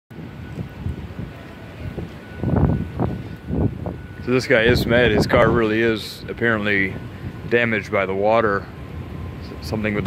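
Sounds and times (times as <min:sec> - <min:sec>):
wind buffeting microphone: 0:00.1 - 0:10.0.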